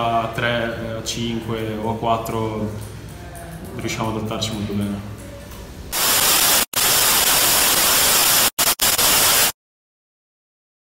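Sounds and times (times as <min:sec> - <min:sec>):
white-noise static hiss: 0:05.9 - 0:09.6.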